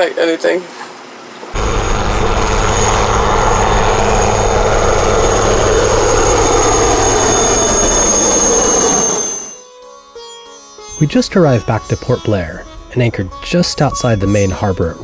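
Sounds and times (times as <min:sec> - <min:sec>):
helicopter flying past: 0:01.6 - 0:09.6.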